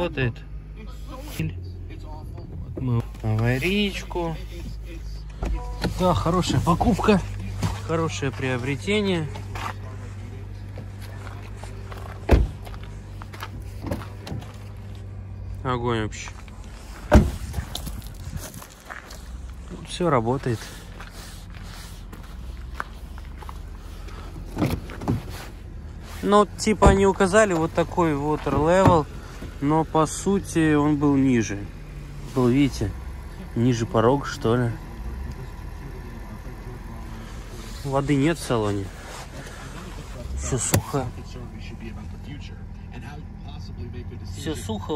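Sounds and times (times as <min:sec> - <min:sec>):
car engine idling: 0:00.0 - 0:44.9
car door slamming shut: 0:12.2 - 0:12.8, 0:17.1 - 0:17.6.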